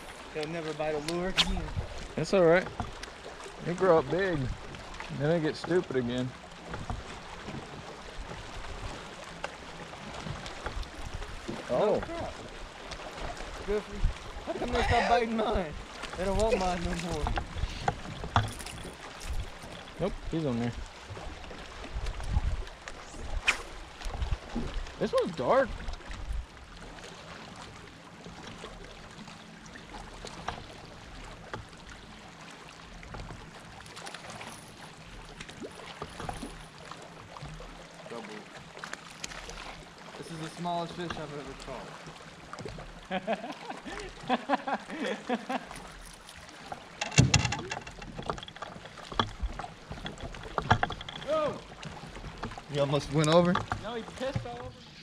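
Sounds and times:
waves lapping against boat hull: 0:00.0 - 0:55.0.

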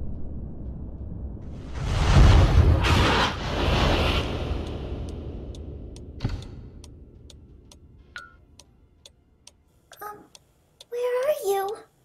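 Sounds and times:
low rumble: 0:00.0 - 0:09.5
wall clock ticking: 0:04.6 - 0:12.0.

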